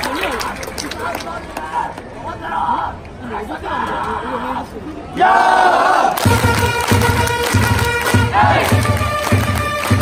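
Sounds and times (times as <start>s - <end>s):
fans shouting a cheer: 5.1s - 10.0s
drums beating: 6.2s - 10.0s
trumpets: 6.2s - 10.0s.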